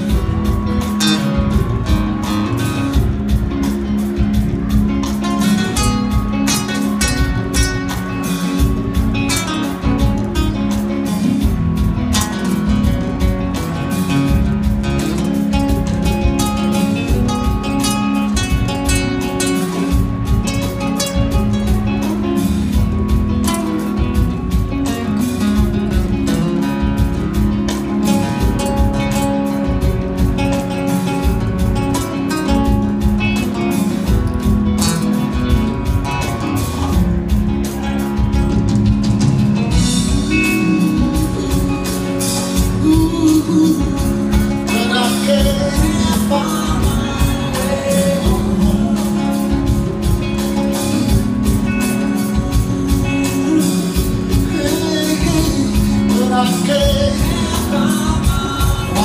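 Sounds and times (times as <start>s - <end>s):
congas: 0.0s - 59.0s
drum kit: 0.0s - 59.0s
plucked guitar: 0.0s - 59.0s.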